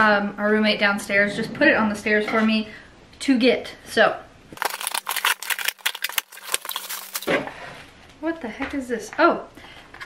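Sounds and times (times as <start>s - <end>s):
plastic packing rustling: 4.6s - 7.4s.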